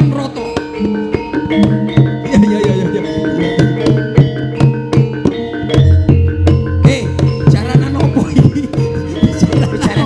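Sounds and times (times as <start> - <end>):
metallophones and gongs ringing: 0.0 - 10.0
hand drums quick rhythm: 0.8 - 10.0.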